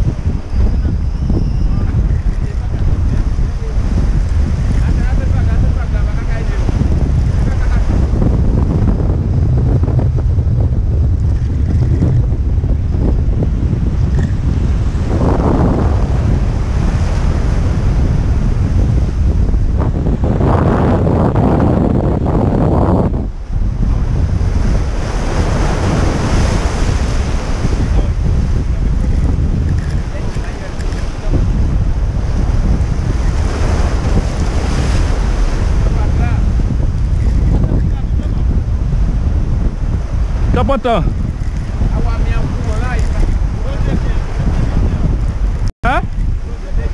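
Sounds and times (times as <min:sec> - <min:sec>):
waves breaking over rocks: 0:00.0 - 0:09.5, 0:23.7 - 0:45.6
wind buffeting microphone: 0:00.0 - 0:46.9.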